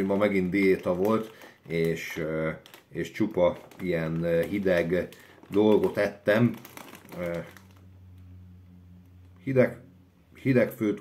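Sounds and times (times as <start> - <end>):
hand rummaging in cloth bag: 0.0 - 7.8
snack packet rustling: 0.0 - 7.9
faint low hum: 0.0 - 11.0.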